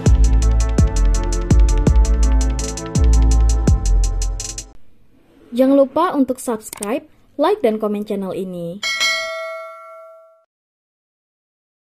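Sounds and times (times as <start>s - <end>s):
bell ding: 8.8s - 10.5s.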